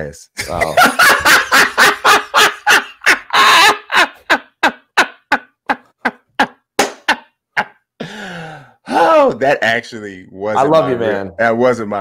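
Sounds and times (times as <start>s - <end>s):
man laughing hard: 0.4s - 8.2s.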